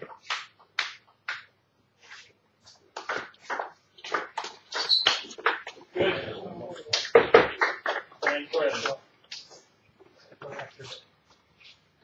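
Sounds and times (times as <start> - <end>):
voice: 5.9 - 7.0, 8.2 - 9.0, 10.3 - 11.0.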